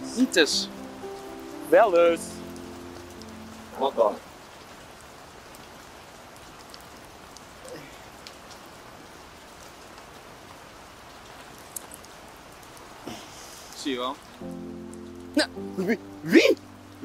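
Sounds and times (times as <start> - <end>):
rain pattering on wet paving: 0.0 - 17.0
drip ticks: 11.6 - 12.8.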